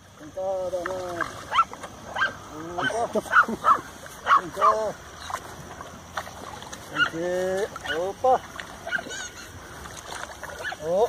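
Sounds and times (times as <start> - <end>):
dogs barking: 1.4 - 5.4, 6.9 - 8.2, 8.8 - 9.4, 10.5 - 11.0.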